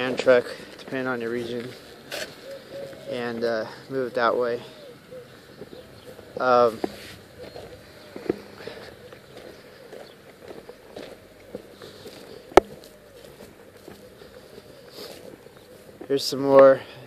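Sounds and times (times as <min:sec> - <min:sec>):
footsteps on dry grass: 0:00.0 - 0:17.0.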